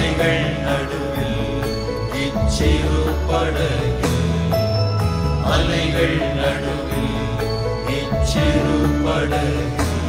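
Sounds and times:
men's choir singing: 0.0s - 4.6s, 5.4s - 10.0s.

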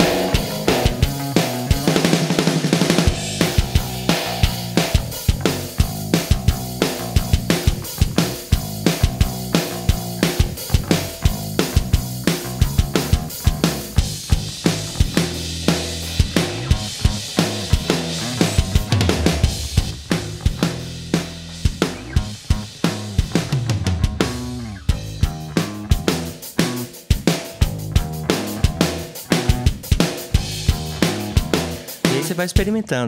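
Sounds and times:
bass guitar line: 0.0s - 33.0s
rock drum kit: 0.0s - 33.0s.

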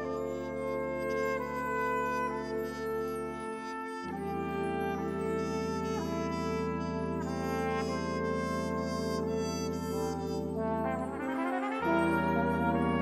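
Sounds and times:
held low brass chords: 0.0s - 13.0s
trumpet melody: 0.0s - 13.0s.

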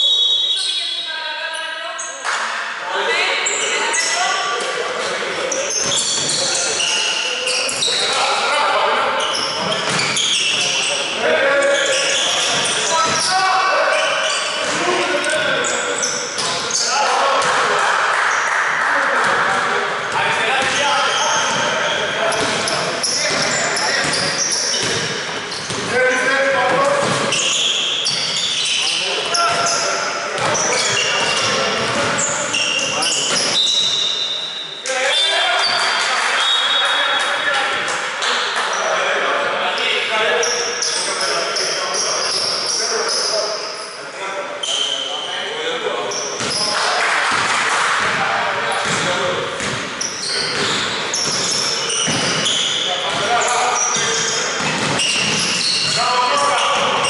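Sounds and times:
basketball bouncing on wooden court: 21.5s - 25.9s, 26.7s - 27.4s, 30.4s - 32.5s, 48.8s - 49.9s, 50.5s - 53.3s, 54.0s - 56.0s.

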